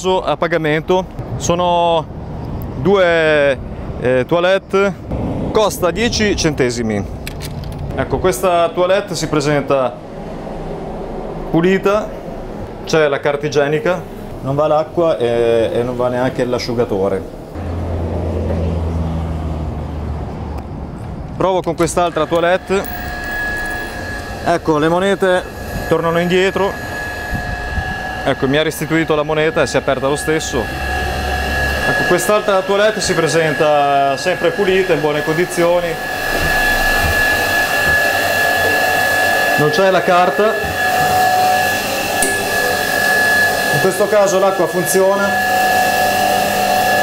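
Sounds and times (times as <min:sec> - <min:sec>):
constant high whine: 0:00.0 - 0:19.0, 0:19.9 - 0:47.0
low mechanical hum: 0:20.3 - 0:39.5.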